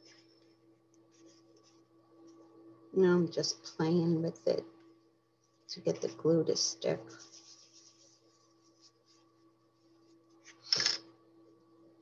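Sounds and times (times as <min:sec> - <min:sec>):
paper rubbing and ticking: 0:07.1 - 0:10.9.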